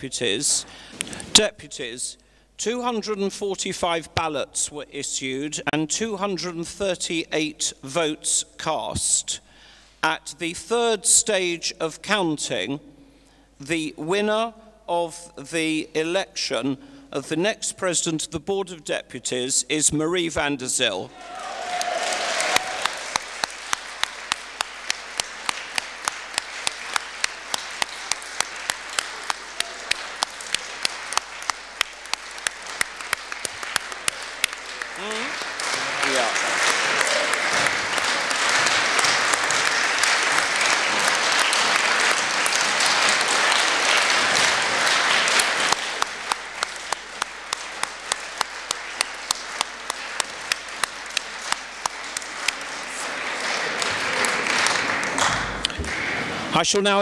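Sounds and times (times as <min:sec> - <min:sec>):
audience applauding: 0:21.1 - 0:56.3
close steady clapping: 0:21.2 - 0:56.1.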